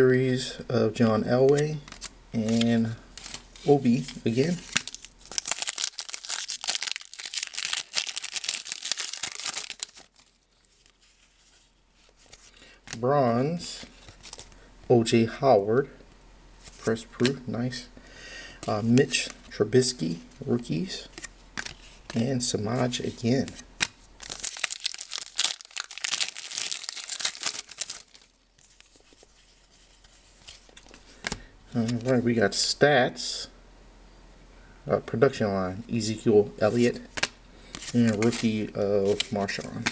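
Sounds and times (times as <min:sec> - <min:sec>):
wrapper tearing and crinkling: 0:02.0 - 0:11.2, 0:24.2 - 0:29.2.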